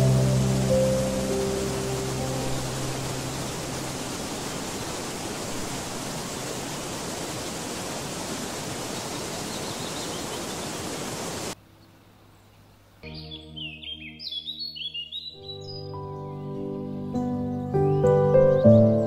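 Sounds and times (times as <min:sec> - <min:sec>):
waterfall rushing: 0:00.0 - 0:11.6.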